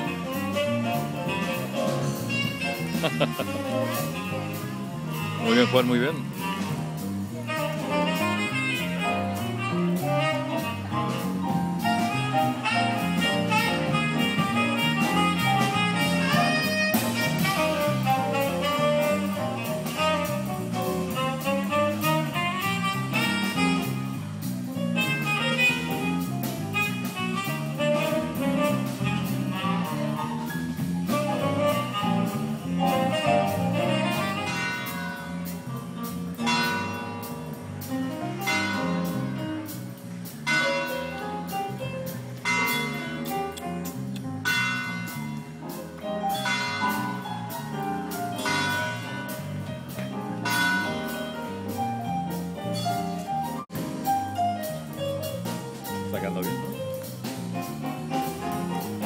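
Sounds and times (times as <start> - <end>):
live jazz band playing: 0.0 - 59.0.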